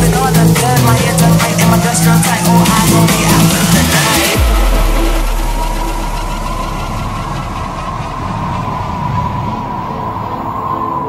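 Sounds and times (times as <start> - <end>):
dance music drums: 0.0 - 8.4
deep bass note: 0.0 - 9.8
steady synth tone: 0.0 - 11.0
wash of noise: 0.0 - 11.0.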